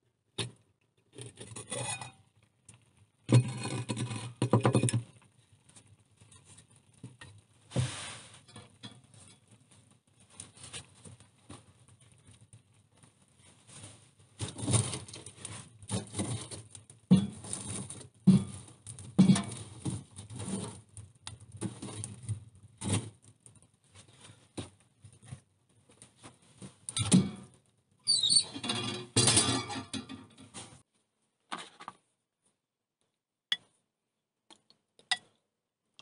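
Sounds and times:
firewood knocking and scraping: 0:02.8 - 0:13.1, 0:13.7 - 0:27.6
brief squeak: 0:28.1 - 0:28.6
stove metal parts rattling: 0:28.1 - 0:30.6.

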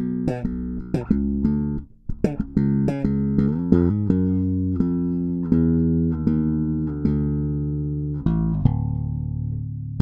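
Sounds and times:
electric bass plucked notes: 0:00.0 - 0:10.0.

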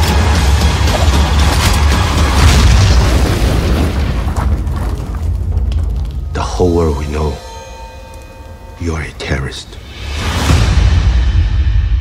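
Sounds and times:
music: 0:00.0 - 0:12.0
deep booms and explosion blasts: 0:01.8 - 0:06.3.

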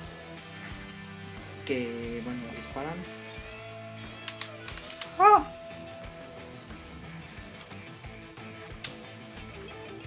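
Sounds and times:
background music: 0:00.0 - 0:10.0
sharp plastic clicks: 0:04.2 - 0:05.1.

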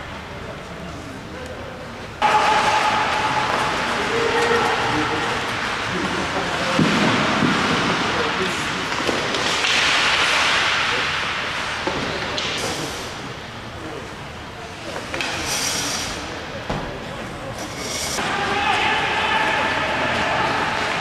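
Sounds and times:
players' voices echoing: 0:00.0 - 0:21.0.

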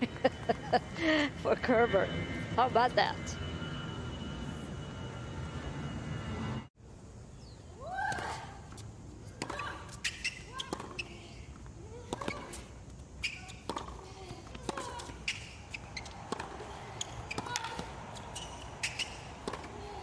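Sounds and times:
shoe squeaks: 0:09.3 - 0:11.5, 0:12.1 - 0:20.0
tennis ball struck: 0:13.6 - 0:14.0, 0:18.8 - 0:19.7.

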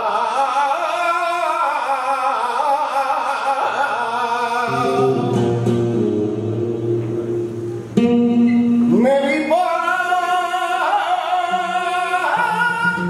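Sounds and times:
man singing flamenco: 0:00.0 - 0:06.2, 0:08.8 - 0:13.0
acoustic guitar: 0:00.0 - 0:13.0.

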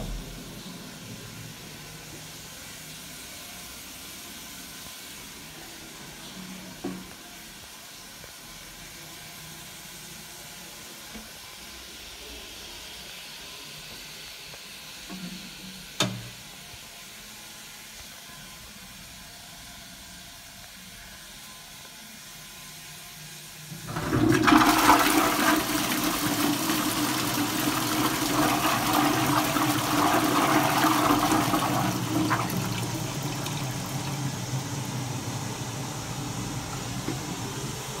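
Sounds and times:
toilet flushing: 0:23.7 - 0:38.0.

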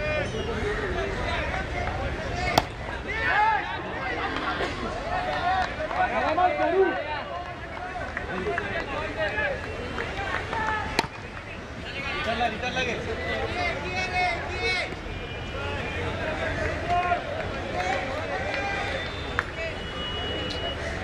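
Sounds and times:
voices calling and chattering: 0:00.0 - 0:21.0.

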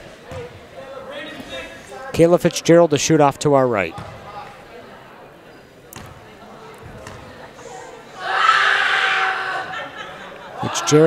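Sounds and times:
crowd voices: 0:00.0 - 0:11.0
basketball bouncing on wooden floor: 0:04.0 - 0:04.2, 0:06.0 - 0:06.2.

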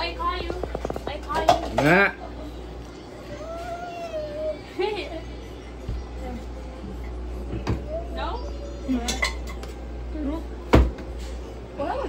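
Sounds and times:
dishes and utensils clinking: 0:00.8 - 0:02.2, 0:08.9 - 0:09.8.

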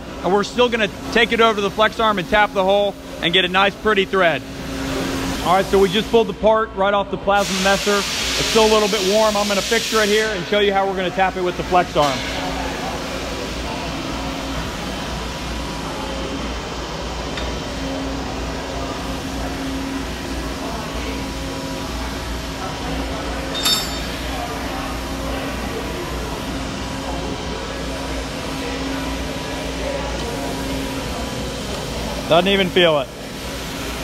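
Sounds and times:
machinery hum: 0:00.0 - 0:34.0
sharp metallic clink: 0:23.5 - 0:24.3.

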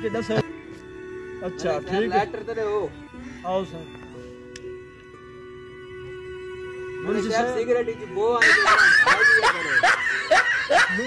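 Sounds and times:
laugh track: 0:08.4 - 0:11.0.

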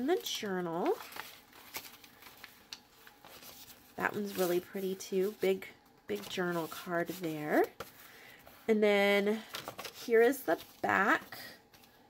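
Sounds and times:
paper pages rustling and turning: 0:00.0 - 0:08.7, 0:09.3 - 0:12.0.

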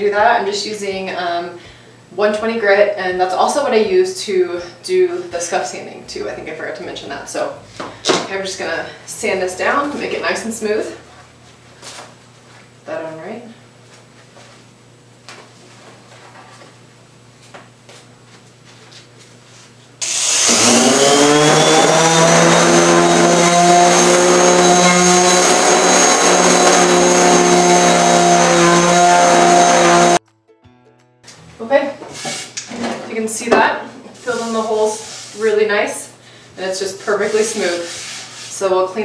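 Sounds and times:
electric palm sander on wood: 0:20.0 - 0:30.2.

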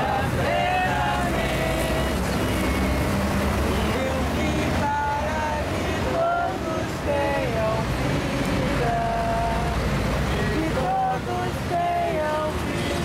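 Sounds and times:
highway traffic rumble: 0:00.0 - 0:13.0.

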